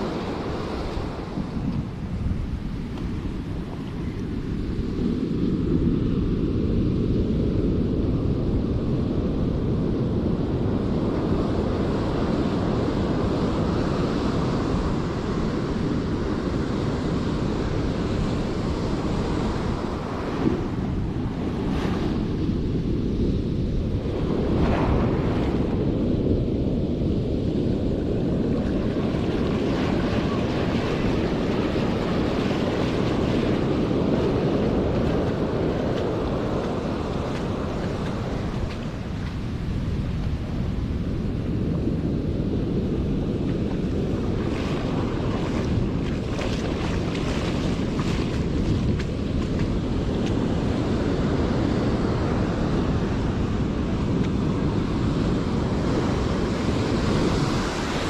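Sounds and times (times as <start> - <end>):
surf breaking and washing: 0.0 - 58.0
wind noise on microphone: 0.0 - 58.0.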